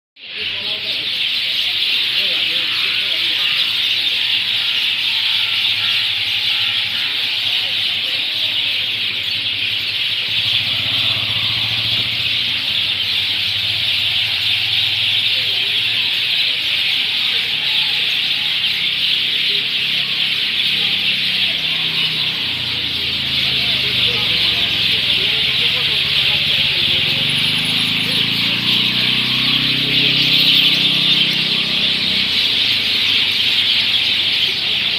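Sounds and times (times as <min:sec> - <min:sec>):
birds chirping in chorus: 0:00.2 - 0:34.9.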